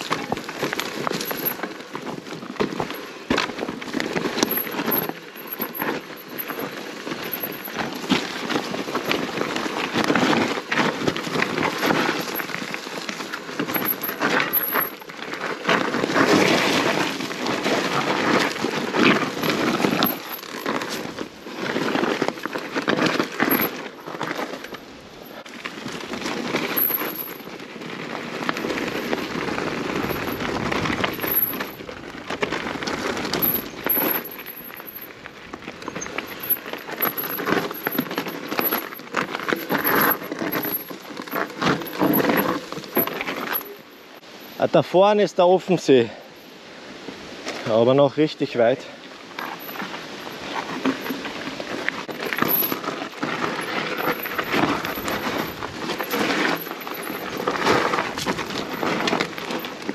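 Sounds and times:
bike clicks and rattles: 0.0 - 43.8, 49.4 - 59.9
bike tyres crunching on gravel: 0.0 - 45.0, 47.0 - 59.9.

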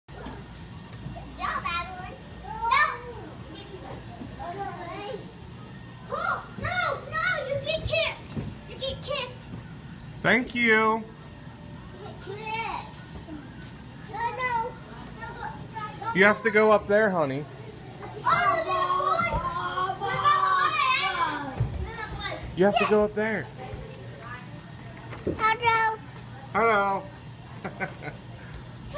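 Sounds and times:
children shouting and squealing: 6.0 - 8.2, 18.0 - 23.0.

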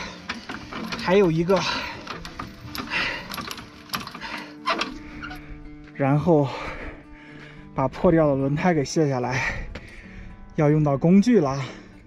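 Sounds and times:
hand crank clicking and clinking: 0.0 - 5.4.

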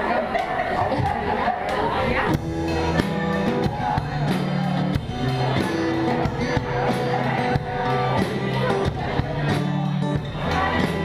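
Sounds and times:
drum kit beat: 2.3 - 11.0
held low bass notes: 2.3 - 11.0
strummed acoustic guitar: 2.3 - 11.0.

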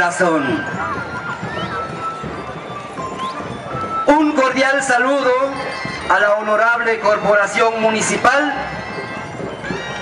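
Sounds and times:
faint outdoor voices: 0.0 - 10.0
music with light percussion: 0.0 - 10.0.

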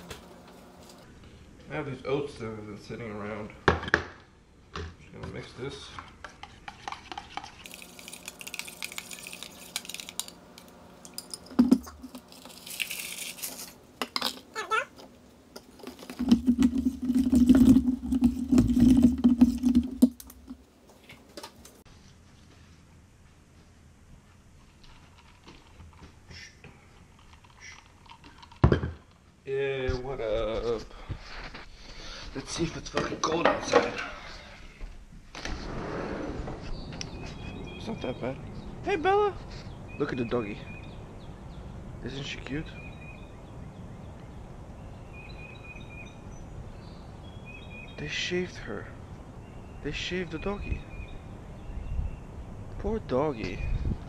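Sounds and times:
rushing noise of sliding door: 35.3 - 36.8.

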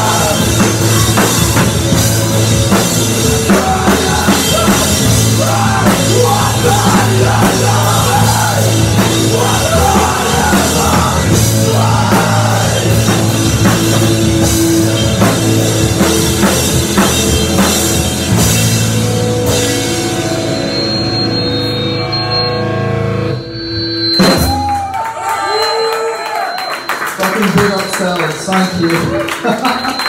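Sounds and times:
rock band playing loudly: 0.0 - 30.0.

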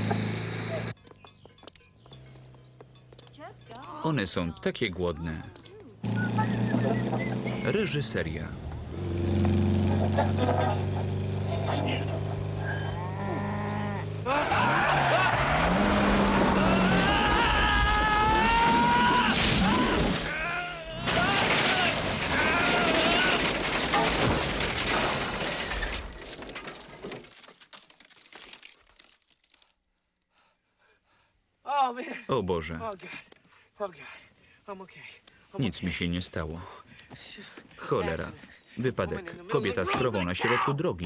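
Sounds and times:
tyres squealing: 11.5 - 26.2
car crashing through wooden fence: 14.3 - 27.8
wood splintering and crashing: 14.3 - 29.7.

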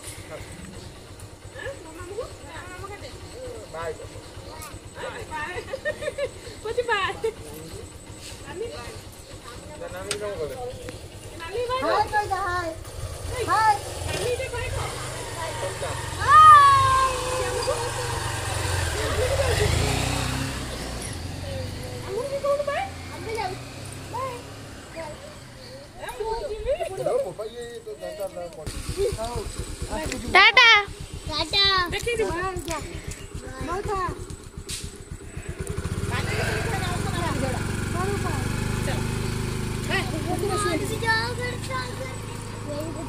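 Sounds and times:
motor scooter and motorcycle engines: 0.0 - 43.0.

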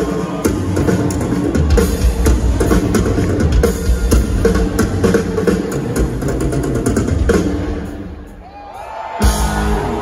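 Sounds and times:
rock drum solo: 0.0 - 10.0.

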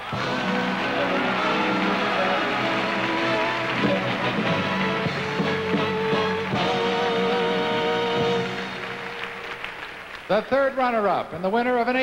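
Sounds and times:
audience applauding: 0.0 - 10.8
stage band music: 0.0 - 10.8.

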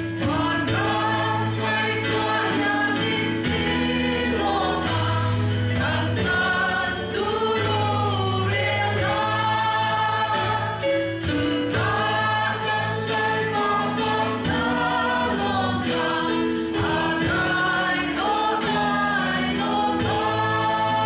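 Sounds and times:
congregation singing a hymn: 0.0 - 21.0
keyboard and bass accompaniment: 0.0 - 21.0.

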